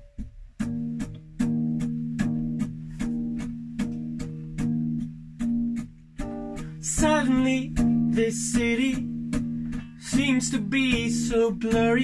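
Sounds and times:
acoustic guitar strumming: 0.0s - 12.0s.

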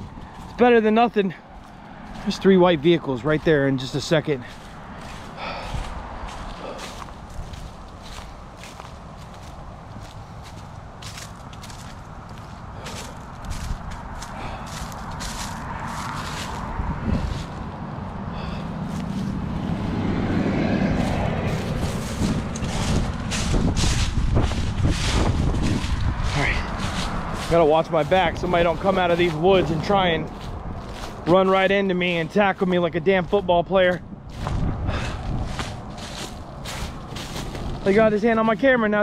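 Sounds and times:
footsteps crunching dry leaves: 0.0s - 39.0s
low rumble: 13.1s - 27.6s, 34.1s - 37.9s.

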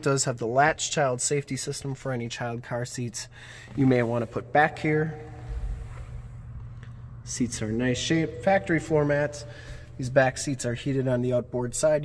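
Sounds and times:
low hum: 4.1s - 12.0s
brief low rumble: 5.2s - 10.0s.

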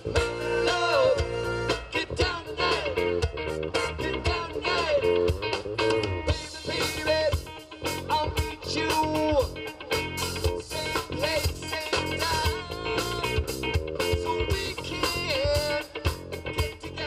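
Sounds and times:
drum beat: 0.0s - 16.9s
bass guitar: 0.0s - 17.0s
electric guitar: 0.0s - 17.0s.

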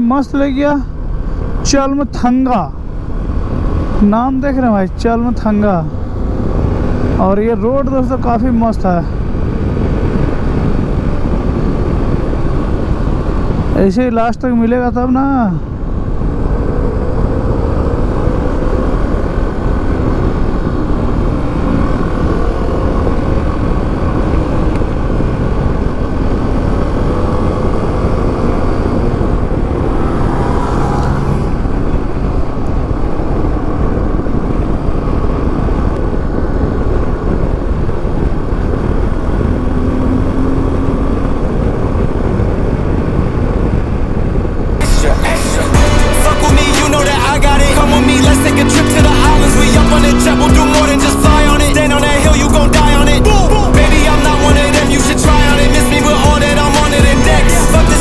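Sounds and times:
wind rushing on microphone: 0.0s - 45.8s
motorcycle engine cruising: 15.7s - 58.0s
motorcycle passing: 16.3s - 33.6s, 44.9s - 58.0s.

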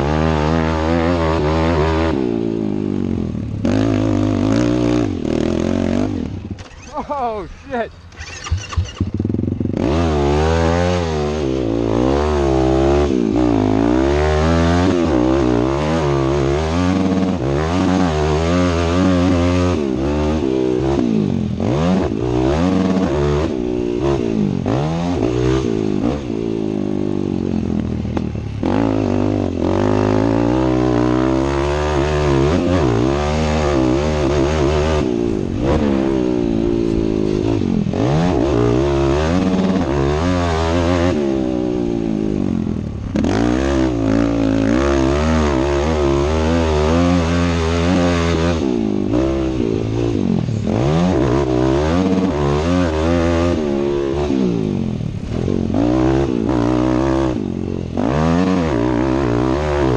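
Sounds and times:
motocross bike engine revving: 0.0s - 59.9s.

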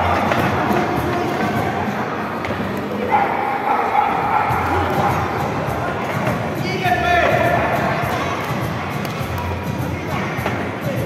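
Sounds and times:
spectator noise in a sports hall: 0.0s - 11.0s.

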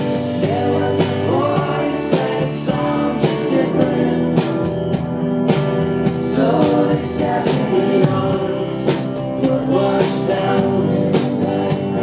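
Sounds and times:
man singing: 0.0s - 4.8s, 6.0s - 12.0s
live rock band: 0.0s - 12.0s.

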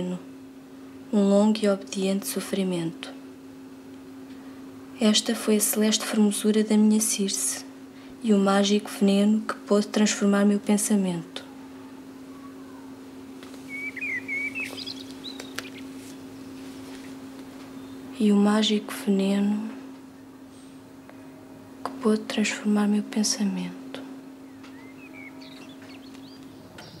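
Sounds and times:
steady low hum: 0.0s - 27.0s
small bird chirping: 13.6s - 18.1s, 24.4s - 27.0s.

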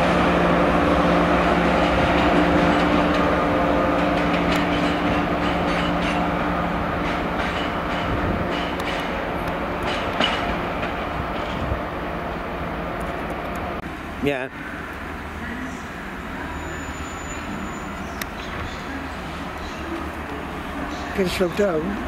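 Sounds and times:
train wheels clicking over rail joints: 0.0s - 13.8s
train hum: 0.0s - 22.0s.

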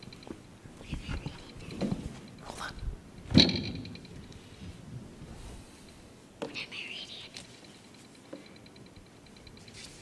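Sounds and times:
faint whispering: 0.8s - 1.8s, 2.4s - 3.0s, 6.4s - 7.5s.

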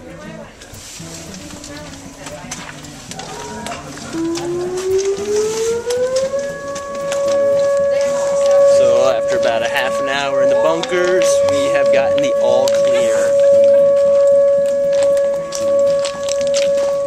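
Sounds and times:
voices: 0.0s - 17.0s
warning siren winding up: 3.2s - 17.0s.

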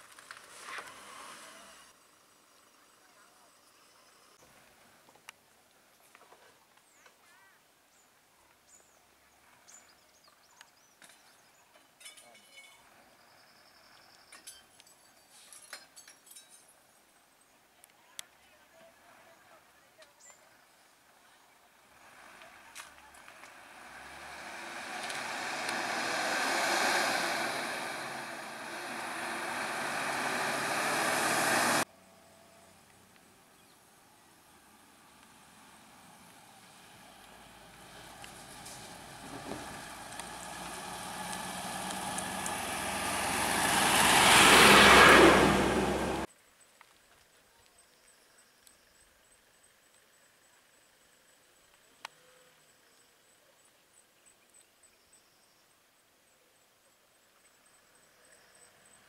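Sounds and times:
bus engine running: 21.8s - 31.9s, 35.8s - 46.3s.

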